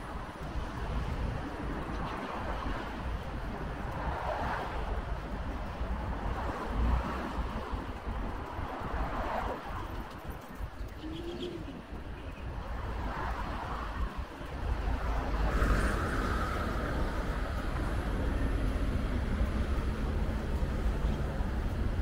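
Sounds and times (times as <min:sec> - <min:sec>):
road traffic rumble: 0:00.0 - 0:22.0.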